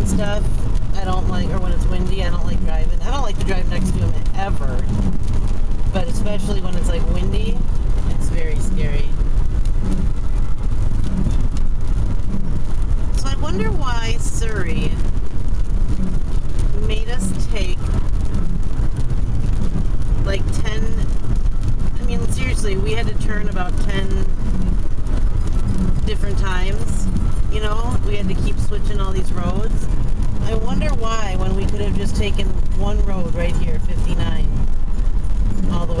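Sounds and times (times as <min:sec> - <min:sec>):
voices: 0:00.0 - 0:04.8, 0:06.0 - 0:09.2, 0:13.2 - 0:15.0, 0:16.7 - 0:17.9, 0:20.2 - 0:21.1, 0:22.0 - 0:24.3, 0:26.0 - 0:29.8, 0:30.4 - 0:34.5, 0:35.6 - 0:36.0
car engine and tyres rumble: 0:00.0 - 0:36.0.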